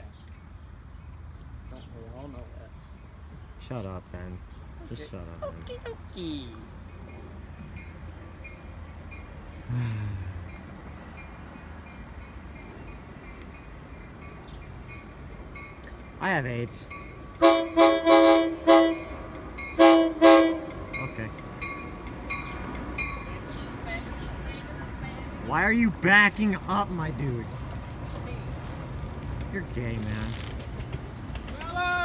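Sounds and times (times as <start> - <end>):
distant train rumble: 0.0 - 32.0.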